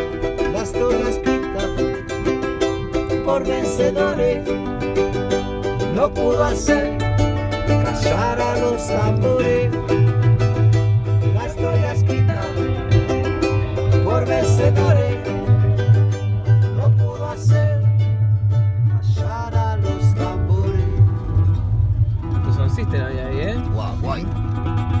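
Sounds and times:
steady low hum: 0.0s - 25.0s
strummed acoustic guitar: 0.0s - 25.0s.

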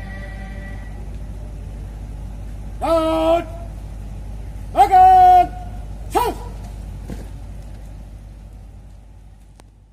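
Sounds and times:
outdoor low rumble: 0.0s - 9.9s.

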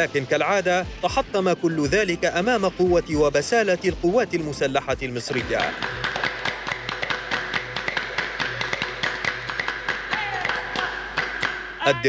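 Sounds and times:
group clapping in fast beat: 5.4s - 11.7s.

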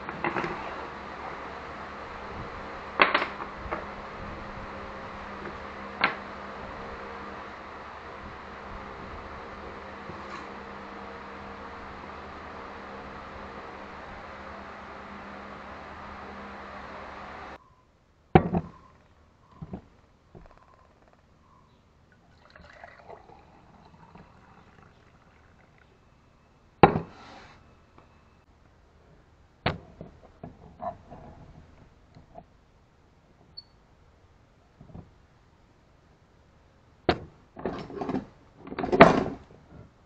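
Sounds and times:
steady hum: 0.0s - 29.6s
liquid pouring into metal mug: 22.2s - 26.2s.

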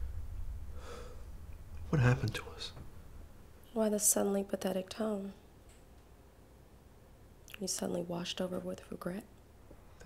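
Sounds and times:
soft breath: 0.0s - 1.4s
steady low hum: 0.0s - 10.0s.

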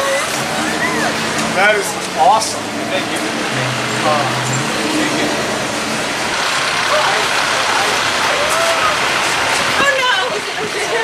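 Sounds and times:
distant voices: 0.0s - 11.0s
street noise hiss: 0.0s - 11.0s.

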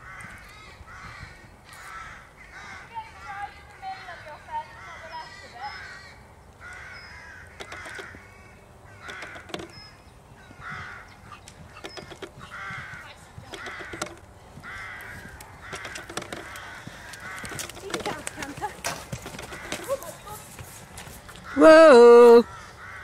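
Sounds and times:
crows cawing: 0.0s - 23.0s.

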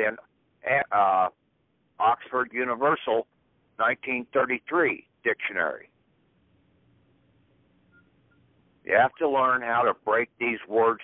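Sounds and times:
man's voice: 0.0s - 1.4s, 2.0s - 3.2s, 3.8s - 5.8s, 8.9s - 11.0s
faint low hum: 0.0s - 11.0s
faint high beeps: 7.8s - 8.6s.

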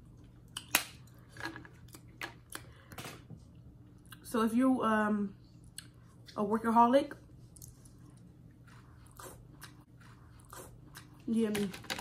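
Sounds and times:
faint chewing: 7.4s - 11.5s.

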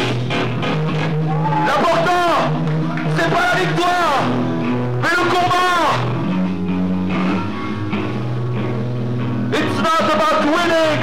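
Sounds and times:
live screamo band playing: 0.0s - 8.7s.

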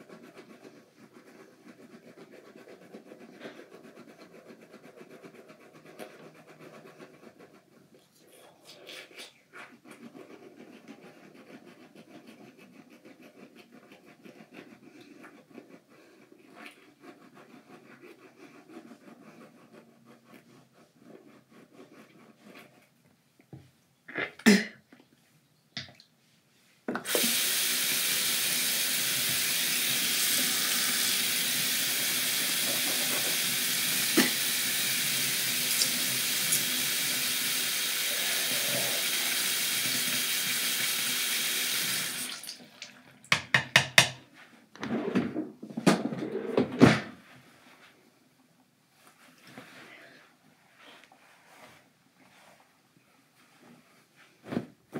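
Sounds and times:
toothbrush scrubbing: 0.0s - 22.9s, 27.1s - 42.4s
sink tap running: 27.0s - 42.6s
sharp knocks at sink: 43.3s - 44.2s.

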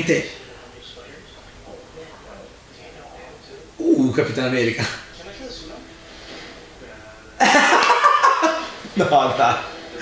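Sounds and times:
man laughing loudly: 7.4s - 9.1s.

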